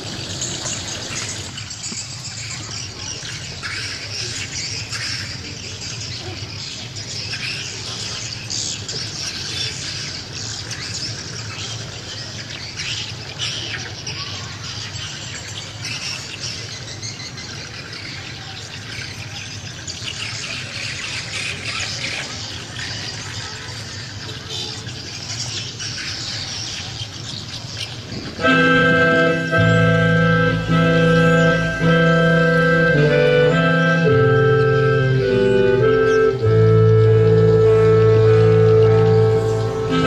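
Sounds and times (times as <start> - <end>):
birds chirping and squawking: 0.2 - 40.0
low steady hum: 28.4 - 40.0.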